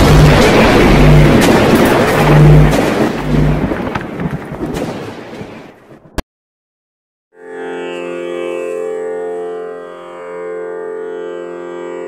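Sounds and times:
scattered crackles: 0.0 - 6.1
deep rumbling boom: 0.0 - 6.2.

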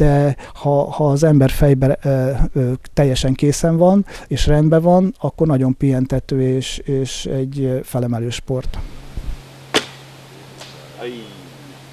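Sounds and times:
bow string snap: 9.7 - 11.0.

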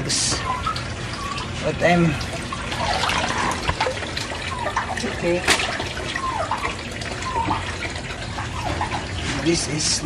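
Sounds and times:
water splashing and trickling: 0.0 - 10.0.

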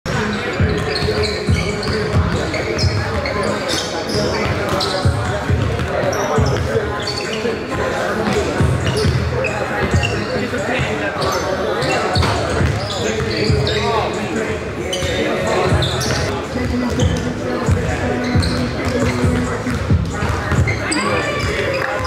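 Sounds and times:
sneaker squeaks: 0.1 - 22.0
basketballs bouncing on wood floor: 4.2 - 6.7, 15.7 - 20.8.

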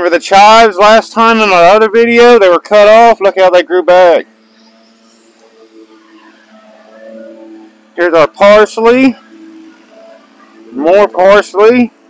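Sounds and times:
distant lawn mower engine: 0.0 - 12.0.

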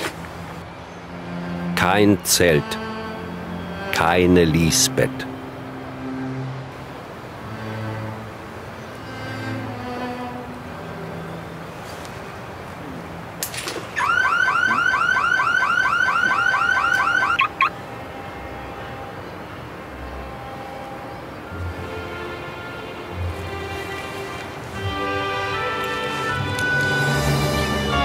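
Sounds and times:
soft music: 0.0 - 13.8, 16.1 - 28.0
electronic warbling alarm: 14.0 - 17.7.

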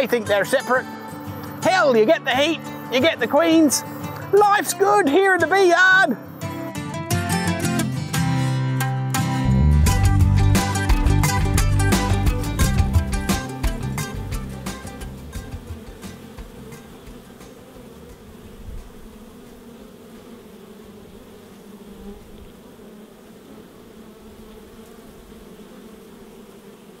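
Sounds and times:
guitar music: 0.0 - 18.5
honey bees buzzing: 0.0 - 27.0.

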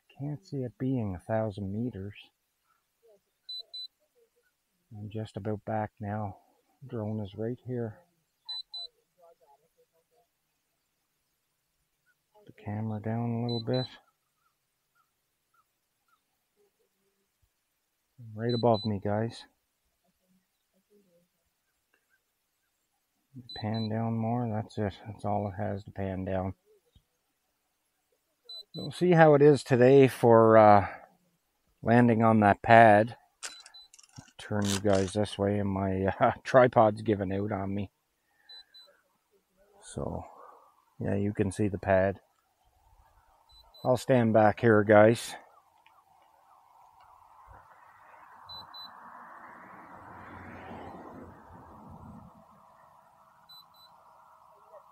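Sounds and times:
faint high-pitched chirps: 2.2 - 4.7, 7.8 - 17.5, 18.2 - 25.7, 28.0 - 29.0, 33.2 - 34.3, 38.2 - 41.0, 42.2 - 44.3, 45.3 - 49.2, 52.5 - 54.9
faint short chirps: 38.4 - 39.0.

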